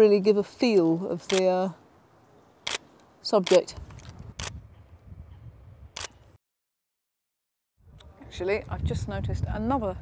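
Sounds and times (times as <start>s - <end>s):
camera shutter click: 2.6s - 2.8s, 3.4s - 4.6s, 6.0s - 6.2s.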